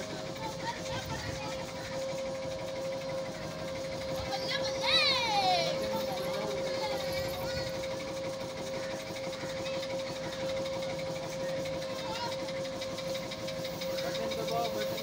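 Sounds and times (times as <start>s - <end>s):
faint voices: 0.0s - 15.0s
fast even ticking of drive: 0.0s - 15.0s
ride machine humming: 0.0s - 15.0s.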